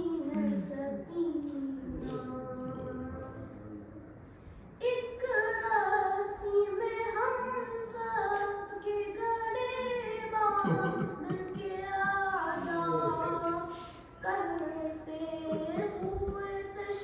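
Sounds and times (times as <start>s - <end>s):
boy singing a lament: 0.0s - 3.9s, 4.8s - 17.0s.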